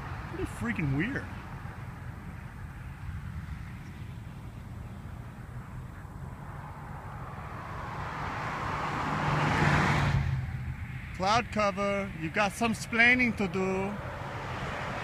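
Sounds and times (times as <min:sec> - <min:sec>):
low rumble of traffic: 0:00.0 - 0:15.0
road vehicle passing close: 0:00.0 - 0:15.0
wind: 0:00.0 - 0:15.0.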